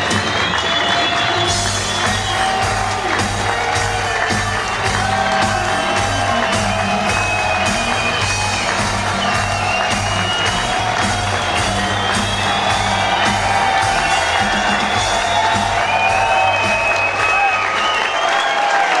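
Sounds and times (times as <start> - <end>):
live rock band playing: 0.0 - 17.2
audience cheering and whooping: 0.0 - 19.0.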